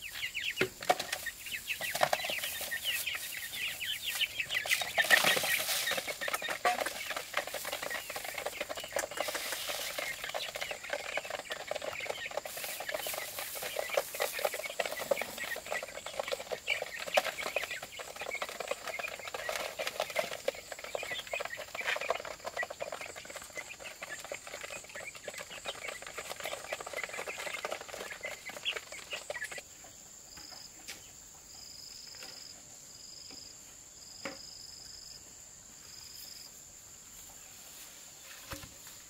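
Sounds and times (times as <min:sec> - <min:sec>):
chicks pecking plastic tray: 0:00.0 - 0:31.0
chicks peeping and clucking: 0:00.0 - 0:33.6.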